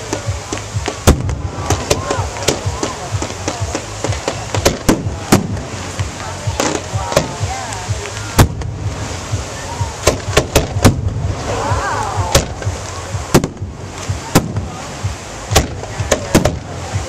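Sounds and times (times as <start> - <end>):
firework shells bursting: 0.5 - 7.4, 10.0 - 11.2.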